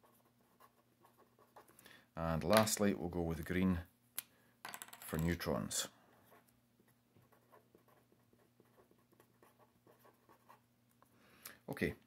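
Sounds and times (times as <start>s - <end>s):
felt-tip pen scratching on paper: 7.2s - 10.6s.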